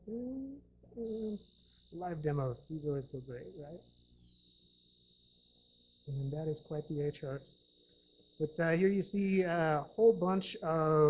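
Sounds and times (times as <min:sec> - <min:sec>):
man humming: 0:00.0 - 0:01.4
steady high-pitched tone: 0:01.0 - 0:05.0, 0:06.0 - 0:11.0.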